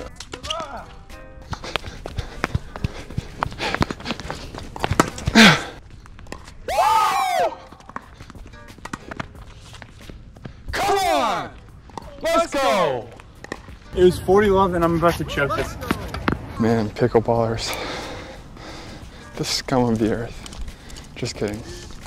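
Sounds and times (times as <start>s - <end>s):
quick footsteps: 0.0s - 6.8s, 7.5s - 22.0s.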